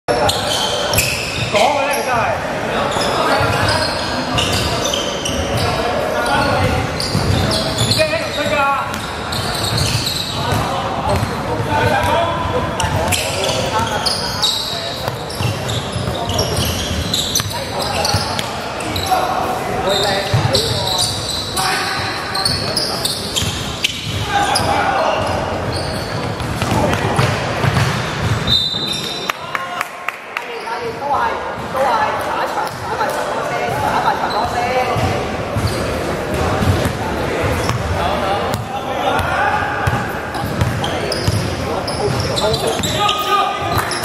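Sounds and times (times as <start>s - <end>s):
players' indistinct calls: 0.1s - 44.0s.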